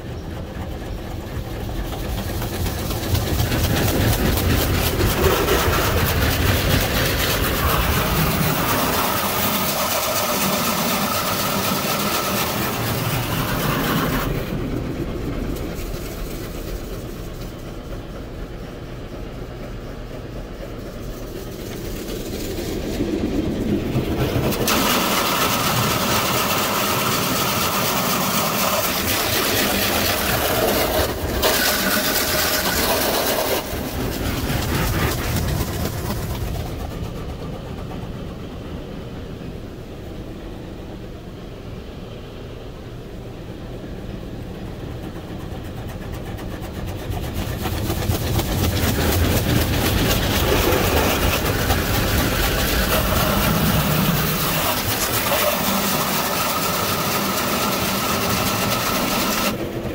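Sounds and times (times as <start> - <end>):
water jets spraying a car: 0.0 - 18.8, 20.5 - 39.2, 43.9 - 59.9.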